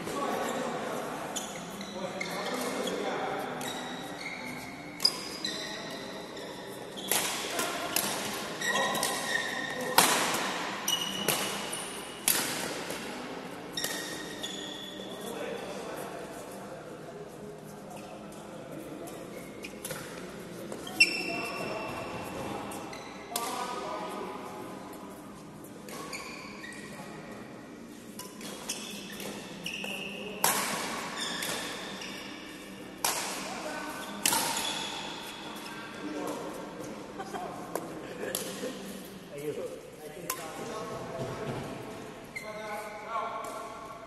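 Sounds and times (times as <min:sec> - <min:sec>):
rackets striking shuttlecock: 0:07.1 - 0:11.6, 0:12.2 - 0:13.2, 0:13.8 - 0:14.4, 0:28.2 - 0:31.8, 0:33.0 - 0:33.6, 0:34.2 - 0:35.1.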